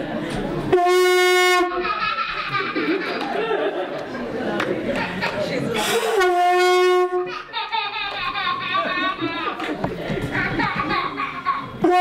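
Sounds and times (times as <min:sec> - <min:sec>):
people chattering: 0:00.0 - 0:12.0
conch shell trumpet blast: 0:00.7 - 0:01.7, 0:05.9 - 0:07.3.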